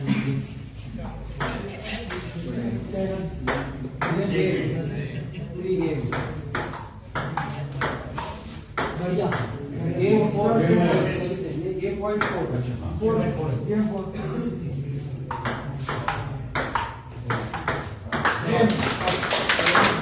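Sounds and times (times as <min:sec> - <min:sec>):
ping pong ball clicking: 0:06.2 - 0:09.5, 0:15.3 - 0:18.2.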